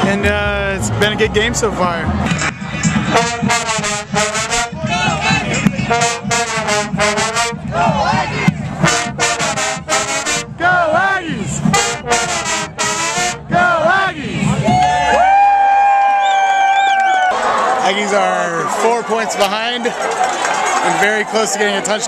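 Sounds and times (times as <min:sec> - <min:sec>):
brass band playing: 0:00.0 - 0:14.6.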